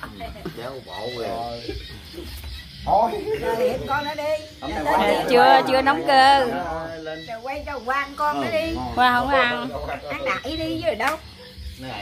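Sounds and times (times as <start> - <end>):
faint background music: 0.0 - 12.0
people talking and exclaiming: 0.0 - 12.0.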